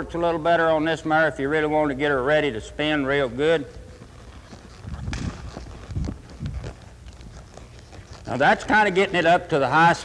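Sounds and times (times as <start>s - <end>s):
hoofbeats on soft dirt: 2.4s - 10.0s
sharp hoof click: 3.4s - 9.5s.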